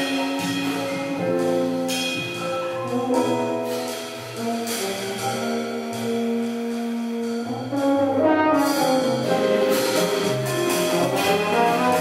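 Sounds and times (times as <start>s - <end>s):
double bass: 0.0s - 12.0s
drums: 0.0s - 12.0s
french horn jazz solo: 0.0s - 12.0s
piano: 0.0s - 12.0s.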